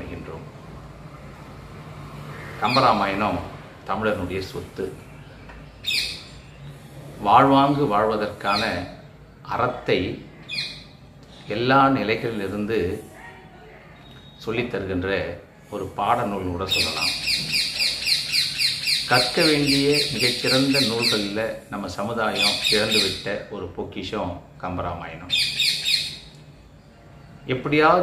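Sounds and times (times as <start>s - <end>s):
bird chirping rapidly: 5.1s - 6.8s, 10.5s - 11.0s, 16.7s - 21.4s, 22.3s - 23.3s, 25.3s - 26.3s.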